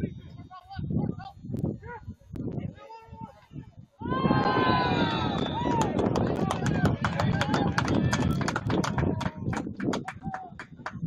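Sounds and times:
people shouting: 0:04.0 - 0:07.8
people clapping: 0:04.3 - 0:11.0.

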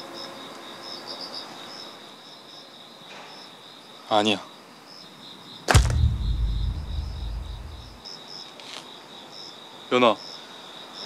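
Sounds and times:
crickets chirping: 0:00.2 - 0:11.0
low boom: 0:05.7 - 0:08.0
whoosh hit impact: 0:05.7 - 0:08.0.

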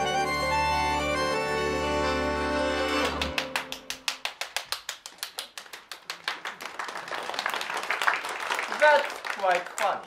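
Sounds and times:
hands clapping in rhythm: 0:03.0 - 0:10.0.

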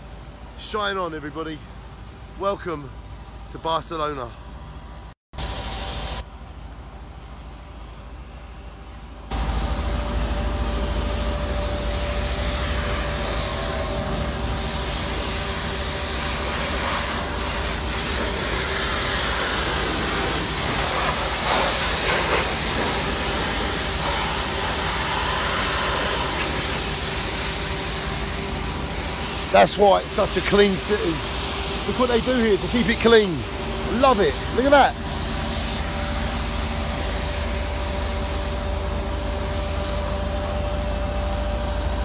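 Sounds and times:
high-pressure water hose spraying: 0:05.4 - 0:06.2, 0:09.4 - 0:40.2.

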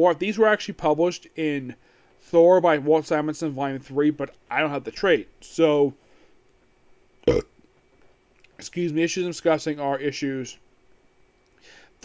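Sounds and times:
man burping: 0:07.2 - 0:07.5.

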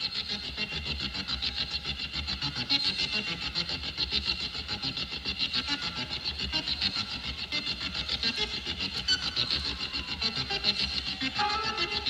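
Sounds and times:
distorted electric keyboard: 0:11.3 - 0:12.0.

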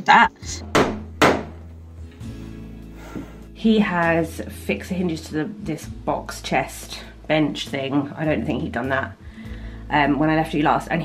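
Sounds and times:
soft background music: 0:00.0 - 0:11.0
hammer striking wooden boards: 0:00.7 - 0:01.6.

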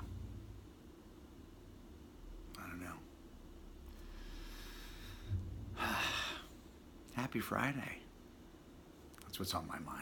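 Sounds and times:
man breathing: 0:03.9 - 0:06.7
faint low thump: 0:05.2 - 0:05.8.

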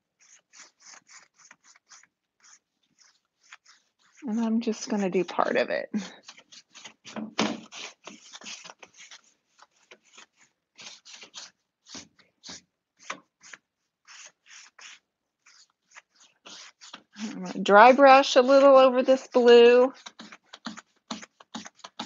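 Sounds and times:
scratchy paintbrush swishes on wood: 0:00.2 - 0:05.0, 0:06.3 - 0:22.0.

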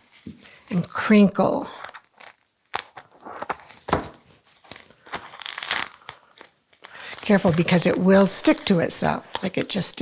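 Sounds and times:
plastic crinkling: 0:01.6 - 0:10.0
scissors cutting plastic: 0:01.8 - 0:03.7.

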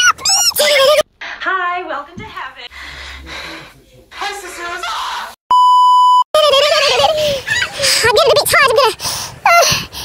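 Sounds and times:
flat electronic beep: 0:05.5 - 0:06.2.

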